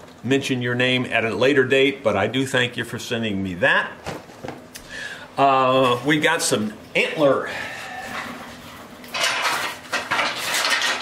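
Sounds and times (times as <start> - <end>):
antlers clattering and scraping: 8.0 - 11.0.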